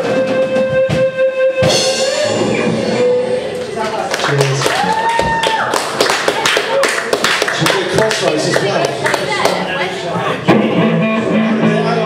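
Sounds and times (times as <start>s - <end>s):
held high tone: 0.0s - 3.9s
murmur of voices: 1.9s - 5.0s, 6.0s - 12.0s
hand claps: 4.1s - 9.6s.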